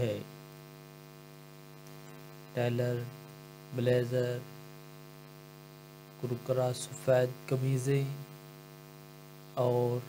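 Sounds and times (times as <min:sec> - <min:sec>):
person speaking: 0:00.0 - 0:00.3, 0:02.0 - 0:04.6, 0:06.2 - 0:08.4, 0:09.5 - 0:10.0
steady hum with overtones: 0:00.0 - 0:10.0.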